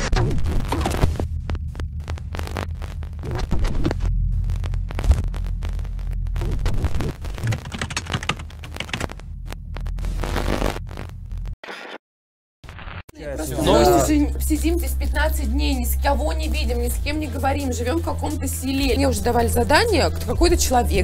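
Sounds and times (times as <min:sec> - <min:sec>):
deep bass hum: 0:00.0 - 0:11.6, 0:13.2 - 0:21.0
crackling glitch static: 0:00.0 - 0:12.0.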